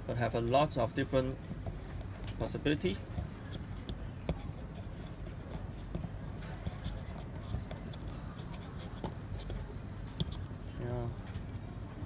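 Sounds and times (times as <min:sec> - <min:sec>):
low steady background hum: 0:00.0 - 0:12.0.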